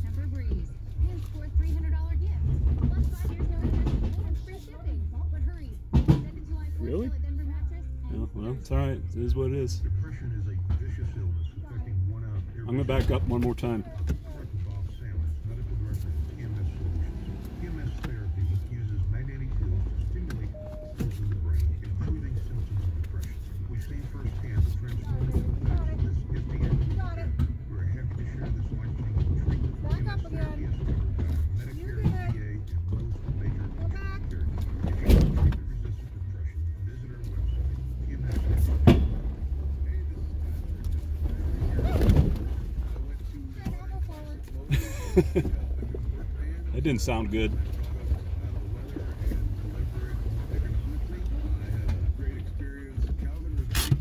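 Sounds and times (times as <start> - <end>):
truck engine running: 0.0 - 54.0.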